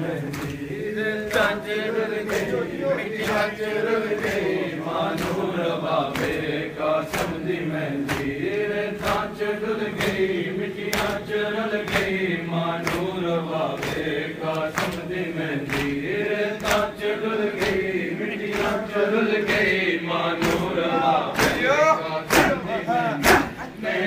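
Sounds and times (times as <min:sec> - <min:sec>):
men chanting together: 0:00.0 - 0:24.0
chest-beating slaps: 0:08.1 - 0:08.4, 0:10.9 - 0:11.3, 0:20.4 - 0:23.7.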